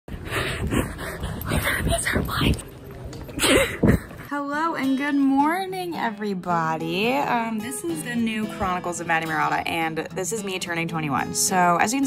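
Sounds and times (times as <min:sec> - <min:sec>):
woman laughing in breathy puffs: 0:03.3 - 0:04.3.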